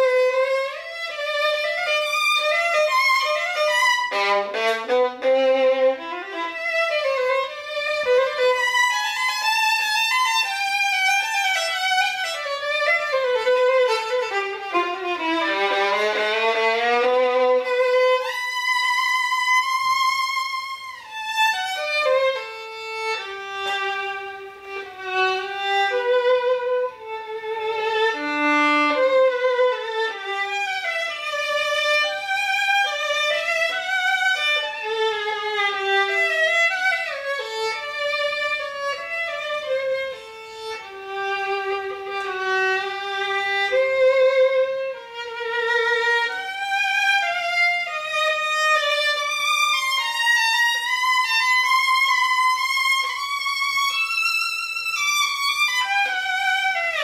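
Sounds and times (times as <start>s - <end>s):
solo violin melody: 0.0s - 57.0s.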